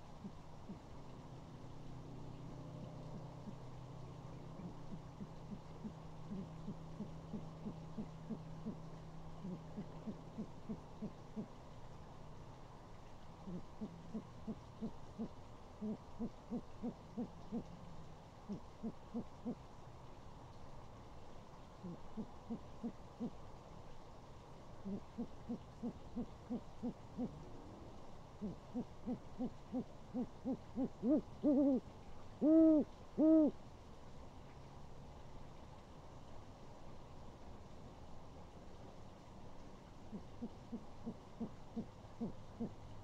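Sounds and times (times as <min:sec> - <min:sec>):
faint low hum: 0:00.0 - 0:43.0
owl hooting: 0:04.5 - 0:11.5, 0:13.4 - 0:17.8, 0:18.5 - 0:19.6, 0:21.8 - 0:23.4, 0:24.8 - 0:33.6, 0:40.1 - 0:42.8.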